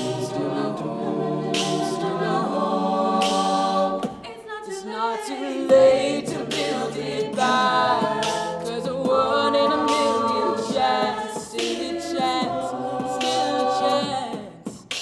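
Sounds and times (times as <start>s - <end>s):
a cappella group singing in harmony: 0.0s - 15.0s.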